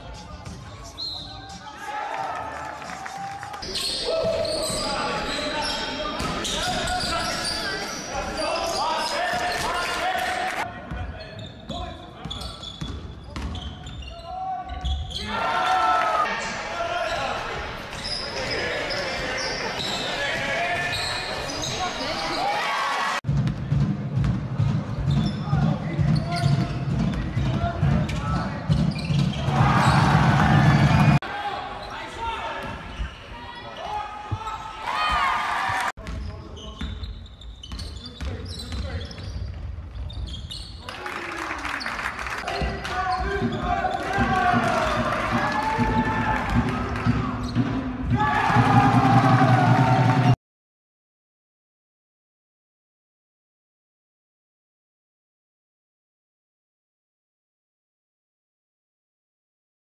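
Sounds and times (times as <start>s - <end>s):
players' voices: 0.0s - 23.2s, 24.9s - 39.4s, 40.8s - 50.4s
sneakers squeaking: 0.2s - 1.6s, 3.6s - 9.8s, 10.9s - 15.8s, 16.4s - 22.7s, 24.8s - 41.0s
basketball bouncing on court: 11.7s - 14.0s.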